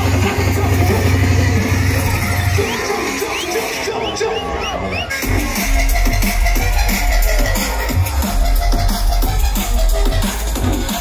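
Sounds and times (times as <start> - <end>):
loud live music with deep bass: 0.0 - 11.0.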